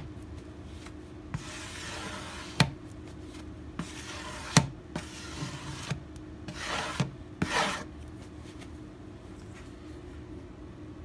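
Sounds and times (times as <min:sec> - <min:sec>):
pad rubbing on wooden guitar: 0:01.4 - 0:02.7, 0:03.8 - 0:07.9.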